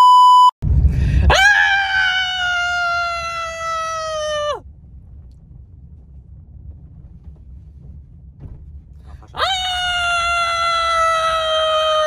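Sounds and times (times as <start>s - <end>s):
car cabin rumble: 0.6s - 12.0s.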